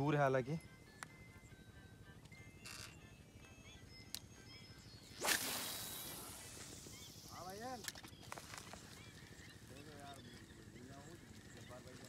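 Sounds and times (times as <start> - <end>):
fishing line hiss: 5.1 - 9.0
fishing rod swishing through air: 5.2 - 6.5.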